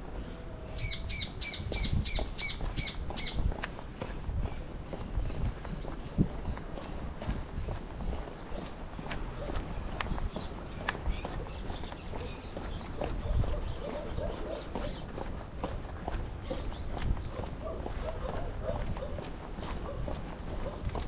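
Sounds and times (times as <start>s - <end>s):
footsteps on pavement: 0.0s - 21.0s
bird calling repeated notes: 0.8s - 3.5s.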